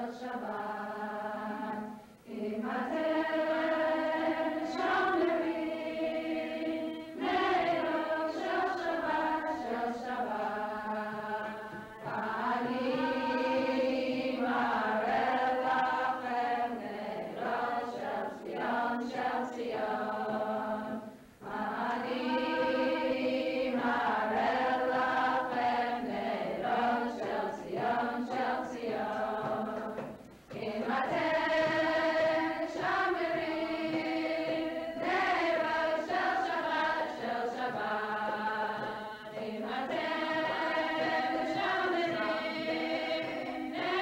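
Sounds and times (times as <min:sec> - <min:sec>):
group singing chant-like melody: 0:00.0 - 0:44.0.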